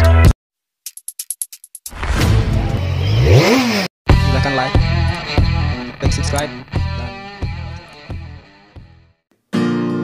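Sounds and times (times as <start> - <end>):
music: 0.0 - 2.8, 4.1 - 10.0
motor revving: 2.8 - 3.9.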